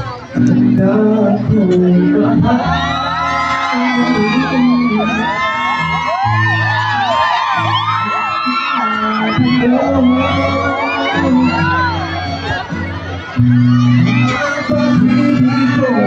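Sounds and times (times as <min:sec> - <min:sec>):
crowd of fans screaming: 0:00.0 - 0:16.0
male singer over backing track: 0:00.4 - 0:05.8, 0:08.0 - 0:12.6, 0:14.0 - 0:16.0.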